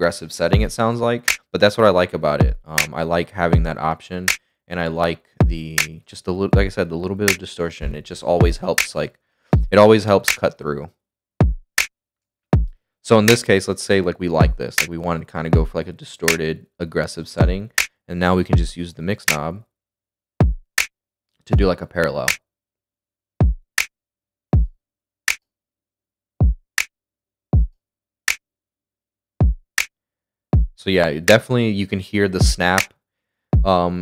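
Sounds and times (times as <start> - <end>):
distorted kick drum: 0.6 - 0.8, 2.4 - 2.7, 3.6 - 3.8, 5.4 - 5.6, 6.6 - 6.8, 7.8 - 8.7, 9.6 - 9.8, 11.4 - 11.6, 14.4 - 14.6, 15.6 - 15.8, 17.4 - 17.7, 18.6 - 18.8, 30.6 - 30.8, 32.4 - 32.6, 33.6 - 33.8
bright snare drum: 6.6 - 8.9, 32.4 - 32.9.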